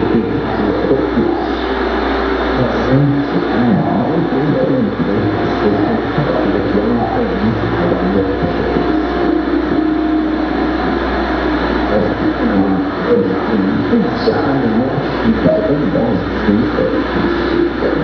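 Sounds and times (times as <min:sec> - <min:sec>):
loud wall of noise: 0:00.0 - 0:18.0
low drone: 0:00.0 - 0:18.0.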